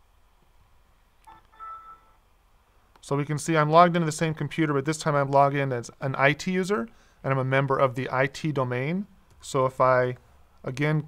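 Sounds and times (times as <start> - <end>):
faint electronic chime: 1.3 - 2.2.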